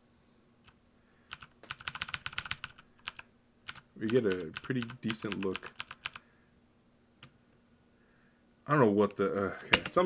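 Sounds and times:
faint steady hum: 0.0 - 10.0
computer keyboard keys clicking: 0.6 - 6.2.

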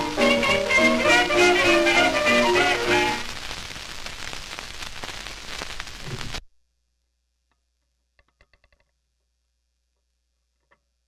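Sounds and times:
record surface hiss and crackles: 0.0 - 11.0.

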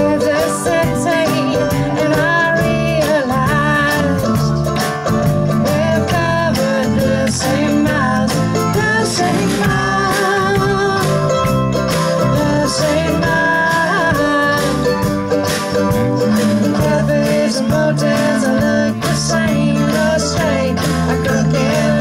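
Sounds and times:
woman singing: 0.0 - 4.7, 5.6 - 11.6, 12.3 - 15.2, 16.3 - 22.0
drums: 0.0 - 22.0
mandolin: 0.0 - 22.0
strummed acoustic guitar: 0.0 - 22.0
upright bass: 0.0 - 22.0.

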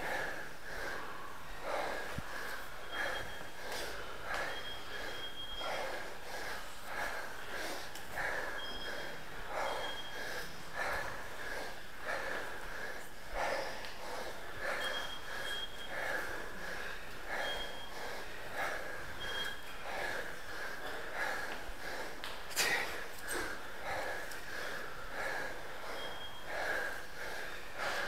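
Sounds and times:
person panting hard: 0.0 - 28.0.

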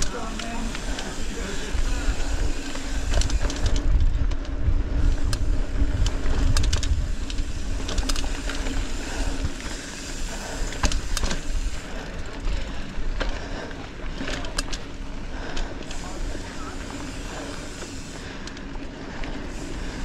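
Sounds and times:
wind rumbling over microphone: 0.0 - 13.2
bike clicks and rattles: 0.0 - 20.0.

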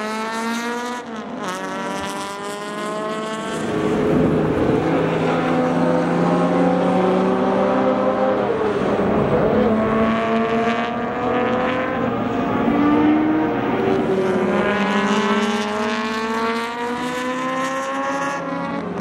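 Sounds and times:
race car engines accelerating: 0.0 - 19.0.

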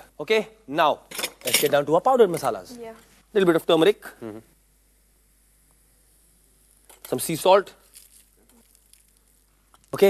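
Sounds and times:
spices sizzling in hot pan: 4.6 - 10.0.

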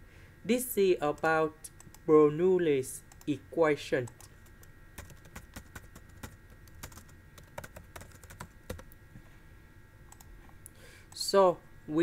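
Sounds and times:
typing on computer keyboard: 4.1 - 8.9.

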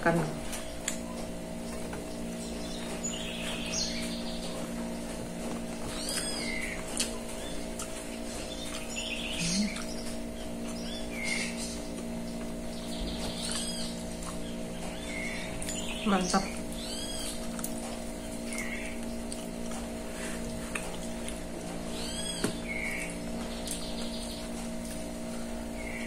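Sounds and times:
steady low hum: 0.0 - 26.0
high arching animal calls: 5.8 - 17.6, 21.9 - 24.5.

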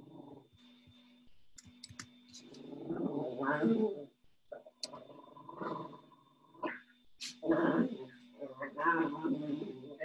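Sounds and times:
faint electronic hum: 0.0 - 10.0.

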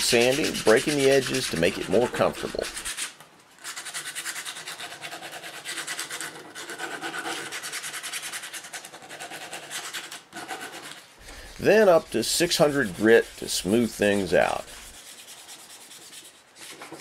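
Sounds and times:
sandpaper rubbing: 0.0 - 17.0.

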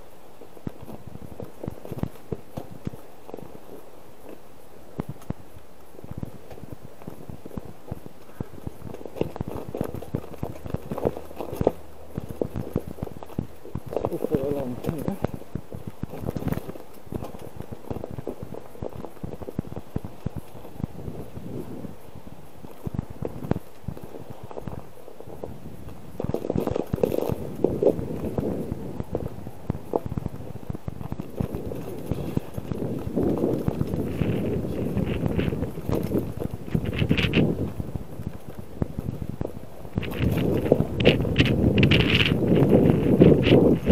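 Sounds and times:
bicycle tyres clattering over ice: 5.0 - 43.9.

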